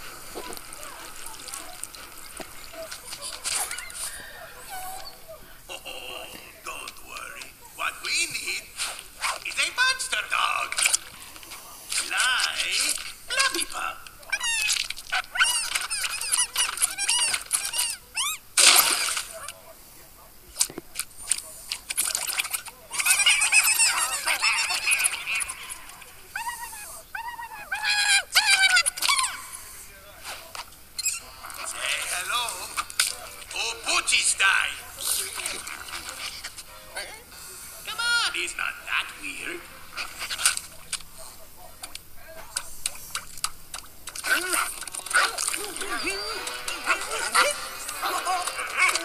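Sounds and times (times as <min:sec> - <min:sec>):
squeaky creature vocalizations: 0:00.0 - 0:11.2, 0:12.0 - 0:19.6, 0:22.0 - 0:29.8, 0:31.0 - 0:41.0, 0:43.8 - 0:49.0.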